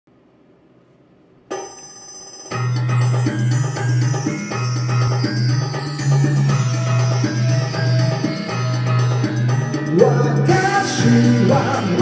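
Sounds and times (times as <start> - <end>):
karaoke backing track: 2.5 - 12.0.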